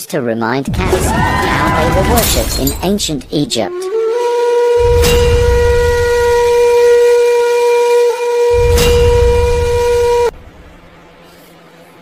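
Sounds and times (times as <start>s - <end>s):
deep rumble: 0.7s - 3.6s
long horn-like note: 3.6s - 10.7s.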